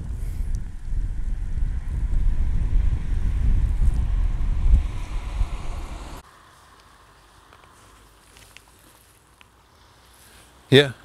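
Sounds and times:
wind buffeting microphone: 0.0s - 6.2s.

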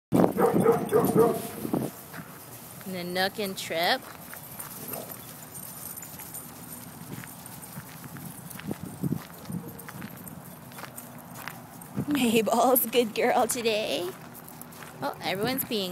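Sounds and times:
footsteps on gravel: 0.2s - 15.9s.

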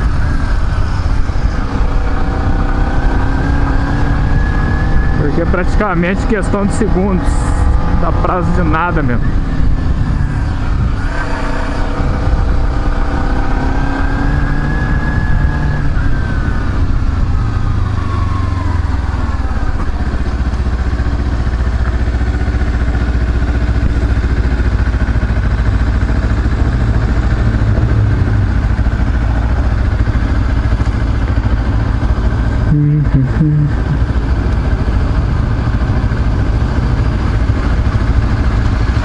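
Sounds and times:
motorcycle engine running: 0.0s - 39.0s.

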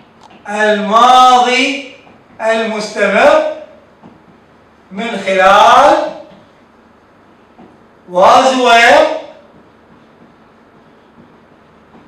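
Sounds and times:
man speaking: 0.5s - 3.8s, 4.9s - 6.3s, 8.1s - 9.4s.

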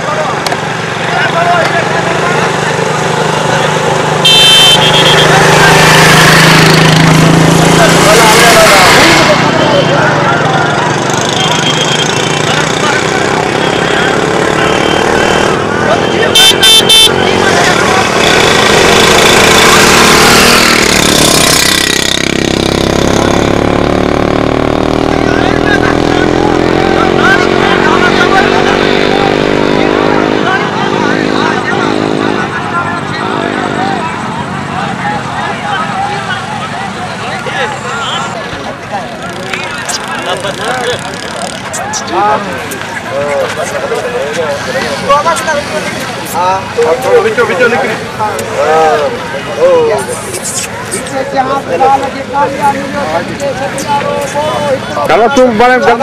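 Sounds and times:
vehicle engines revving: 0.0s - 56.0s
horn toots: 4.2s - 7.0s, 11.1s - 21.6s
crowd shouting: 26.4s - 56.0s.

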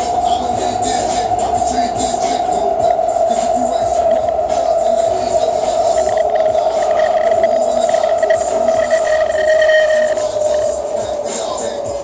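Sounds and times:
high-pitched train whine: 0.0s - 12.0s
low train rumble: 0.0s - 12.0s.

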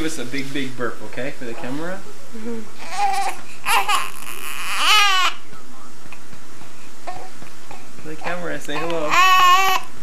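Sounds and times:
steady background hiss: 0.0s - 10.0s
baby cooing: 2.4s - 5.4s, 7.0s - 10.0s.

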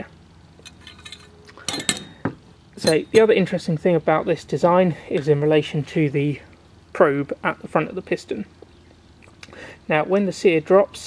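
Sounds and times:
sharp metallic clinks: 0.6s - 2.2s, 2.8s - 3.5s.

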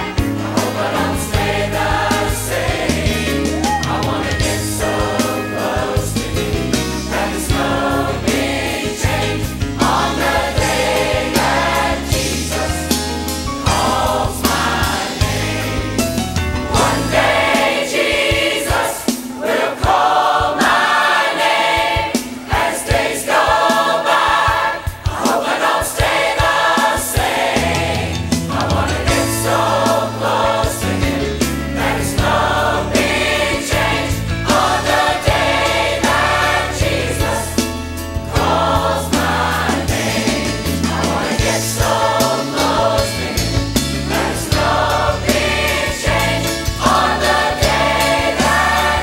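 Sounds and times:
bass line: 0.0s - 17.5s
choir singing: 0.0s - 49.0s
instrumental accompaniment: 0.0s - 49.0s.

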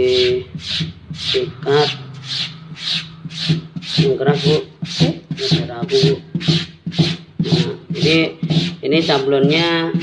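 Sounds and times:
stiff brush scrubbing wet fabric: 0.0s - 10.0s.

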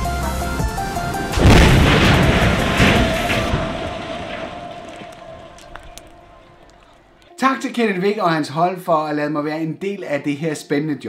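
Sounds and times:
background music: 0.0s - 9.4s
loud boom of building collapse: 0.8s - 7.2s.

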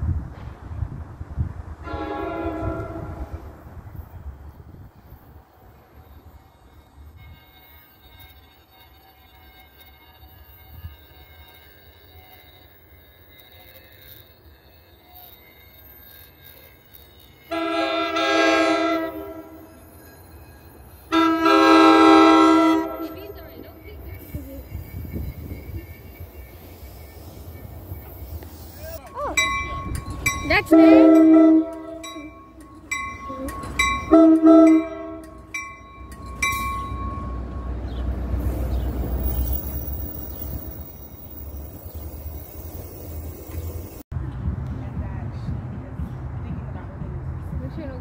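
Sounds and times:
low rumble of train: 0.0s - 48.0s
train horn blasts: 1.8s - 3.6s, 17.2s - 19.8s, 21.1s - 23.5s, 30.2s - 35.5s.

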